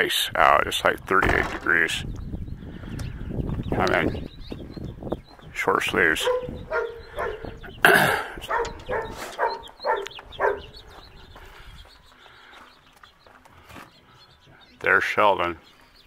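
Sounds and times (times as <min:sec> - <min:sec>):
dog barking: 0:06.2 - 0:07.6, 0:08.4 - 0:10.8
man coughing: 0:07.8 - 0:08.7.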